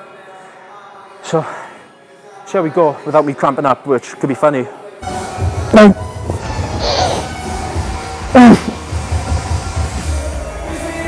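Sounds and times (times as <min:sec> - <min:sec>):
background music with pulsing beat: 0:05.0 - 0:11.0
man groaning with effort: 0:08.4 - 0:08.8.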